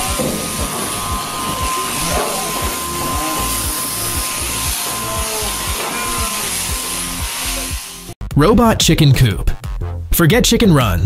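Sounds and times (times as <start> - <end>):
steady hiss: 0.0 - 8.2
music with steady beat: 0.0 - 10.1.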